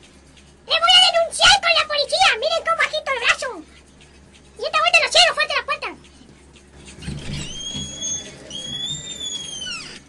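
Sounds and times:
high whistled tones: 0:07.5 - 0:10.0.

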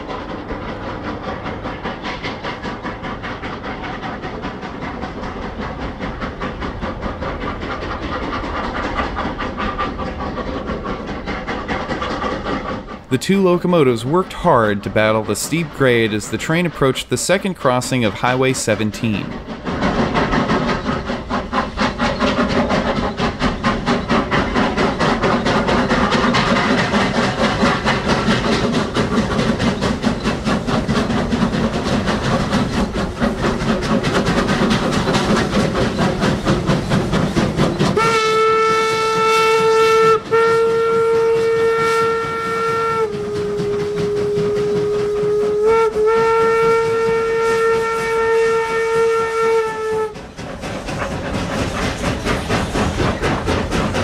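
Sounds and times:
steam locomotive exhaust chuffing: 0:00.0 - 0:54.0
steam whistle blasts: 0:38.0 - 0:50.2.

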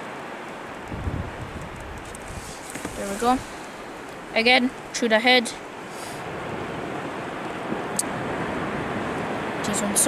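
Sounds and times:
sea surf: 0:00.0 - 0:10.0
wind: 0:00.0 - 0:10.0.

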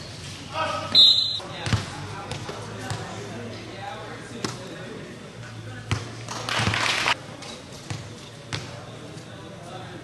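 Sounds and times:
referee's whistle blast: 0:00.9 - 0:01.4
basketball bouncing: 0:01.6 - 0:03.1.

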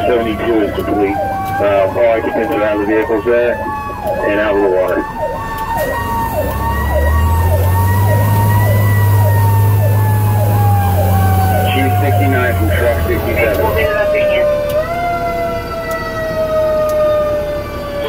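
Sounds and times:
electronic siren yelping: 0:00.0 - 0:18.0
low engine drone: 0:00.0 - 0:18.0
mechanical siren wailing: 0:00.0 - 0:18.0.

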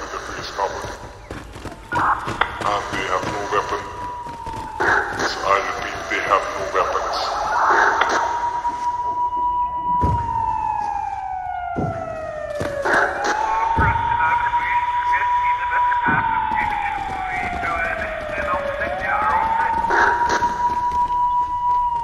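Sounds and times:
siren wailing with reverb: 0:00.0 - 0:22.0
low thumps: 0:09.2 - 0:14.2.

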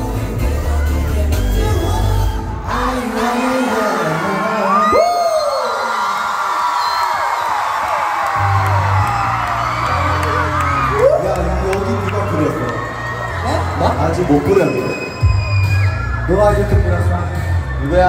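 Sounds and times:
pop music over sound system: 0:00.0 - 0:06.0, 0:08.4 - 0:18.0
audience screaming and cheering: 0:00.0 - 0:18.0.

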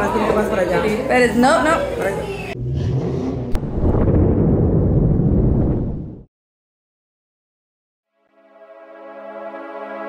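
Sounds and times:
loud low rumble: 0:02.6 - 0:06.3.

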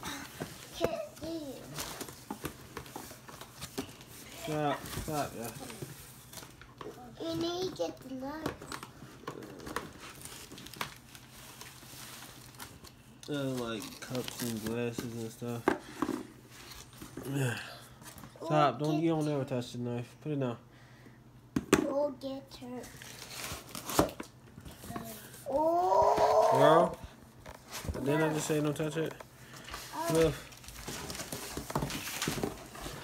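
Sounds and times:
cardboard packing crinkling: 0:09.4 - 0:15.4, 0:29.6 - 0:33.0.

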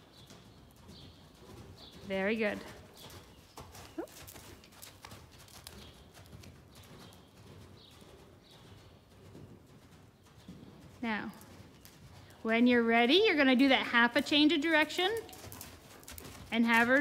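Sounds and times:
horse hoofbeats on sand: 0:00.0 - 0:17.0.

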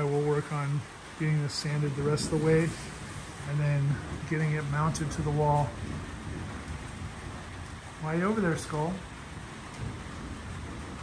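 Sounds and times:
low rumble of thunder: 0:00.0 - 0:11.0
steady rain: 0:00.0 - 0:11.0.

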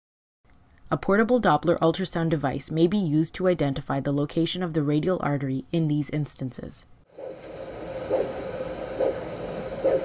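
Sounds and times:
doppler ultrasound pulse whoosh: 0:07.1 - 0:10.0.

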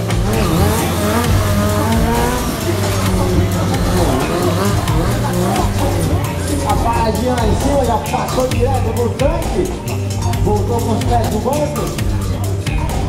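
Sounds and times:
loud background music: 0:00.0 - 0:13.0
motorcycle engine revving: 0:00.0 - 0:13.0
person speaking: 0:00.2 - 0:09.8.

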